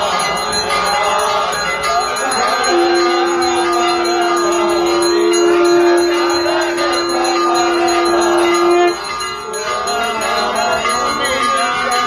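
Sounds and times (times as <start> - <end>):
temple bells ringing: 0.0 - 12.0
long steady held note: 2.7 - 9.1.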